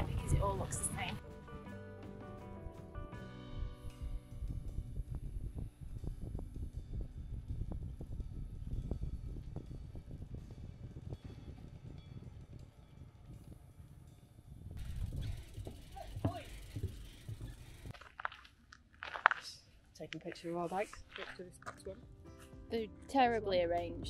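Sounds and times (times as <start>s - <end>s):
bicycle rolling on pavement: 0.0s - 1.2s, 3.9s - 19.5s
wind rumble on microphone: 0.0s - 1.2s, 3.6s - 17.9s.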